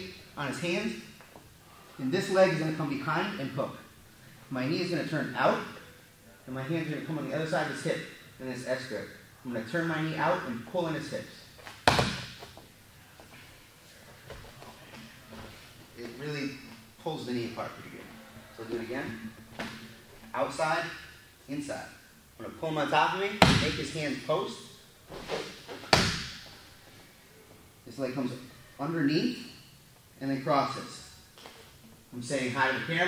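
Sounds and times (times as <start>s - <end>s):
hands slapping mat: 11.6s - 12.6s
sharp slap: 11.7s - 12.5s, 25.9s - 26.5s
body thudding onto foam mat: 11.7s - 12.6s, 25.2s - 26.4s.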